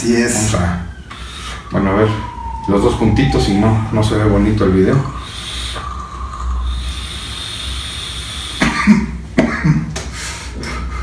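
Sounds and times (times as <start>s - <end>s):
man coughing: 8.6s - 10.0s.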